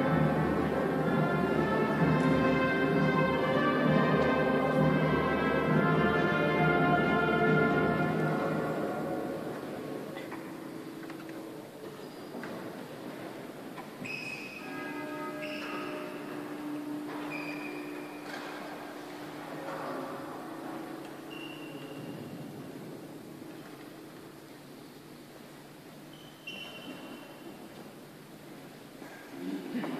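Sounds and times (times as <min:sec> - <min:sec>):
soft held chords: 0:00.0 - 0:11.8
music echoing in church: 0:00.0 - 0:26.1.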